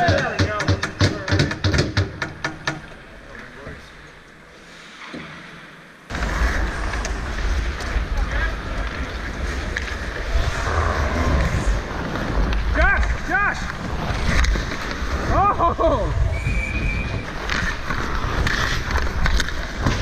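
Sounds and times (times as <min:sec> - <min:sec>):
wind rumbling on microphone: 0:10.0 - 0:12.8, 0:13.9 - 0:17.4.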